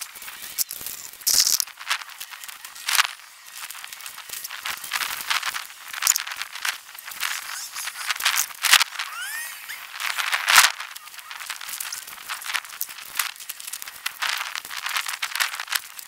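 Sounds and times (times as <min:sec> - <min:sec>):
paper sheet rustling: 0:00.0 - 0:16.0
vinyl sheeting crinkling: 0:00.0 - 0:16.0
short rising squeaks: 0:07.0 - 0:12.2.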